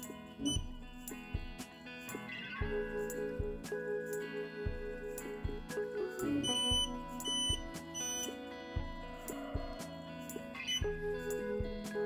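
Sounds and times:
background music with steady beat: 0:00.0 - 0:12.0
short high electronic beeps: 0:06.2 - 0:08.4.

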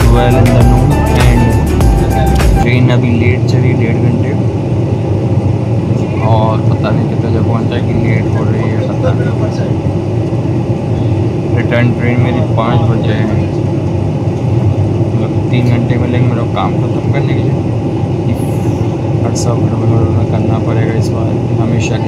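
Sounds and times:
music: 0:00.0 - 0:02.7
faint passenger voices: 0:00.0 - 0:22.0
train running noise: 0:00.0 - 0:22.0.

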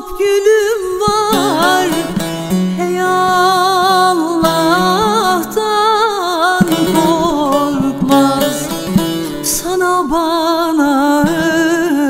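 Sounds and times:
plucked string accompaniment: 0:00.6 - 0:12.0
wavering melody with vibrato: 0:01.1 - 0:10.8.

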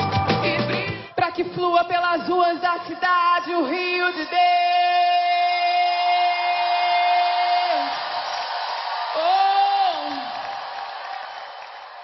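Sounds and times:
crowd noise: 0:04.7 - 0:12.0.

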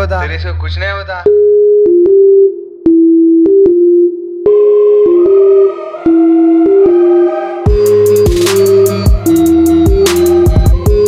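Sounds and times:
synthesizer tone: 0:01.2 - 0:11.0.

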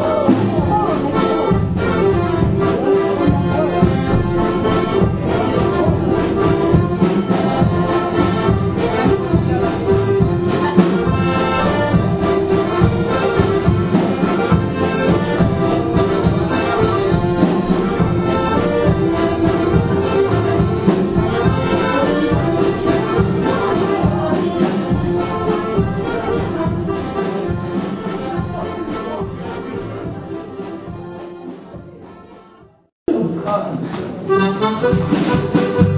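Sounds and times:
accordion folk dance music: 0:00.0 - 0:35.9.

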